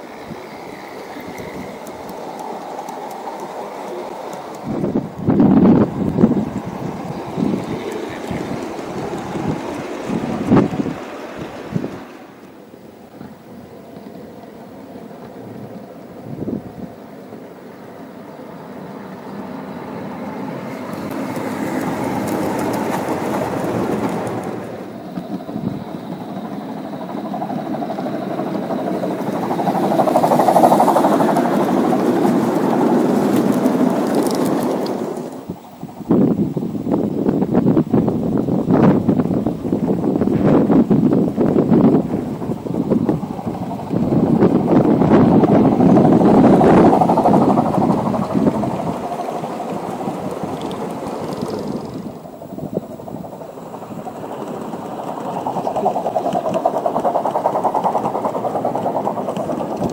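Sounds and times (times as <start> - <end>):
model train wheels rumbling on rails: 0.0 - 59.9.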